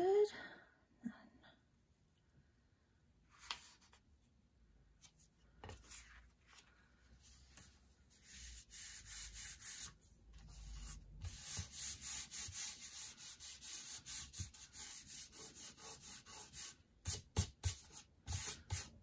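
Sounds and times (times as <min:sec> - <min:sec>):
palms swishing over paper: 0:05.0 - 0:19.0.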